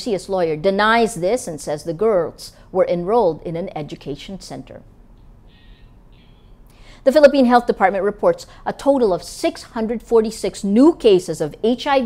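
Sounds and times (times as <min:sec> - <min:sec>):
woman speaking: 0:00.0 - 0:04.9, 0:07.0 - 0:12.0
faint low studio hum: 0:00.0 - 0:12.0
woman breathing in: 0:06.7 - 0:07.0.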